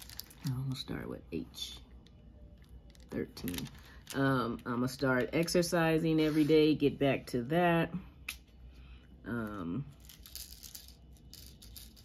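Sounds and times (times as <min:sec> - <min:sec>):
small beads rattling in plastic tray: 0:00.0 - 0:00.5, 0:09.9 - 0:12.0.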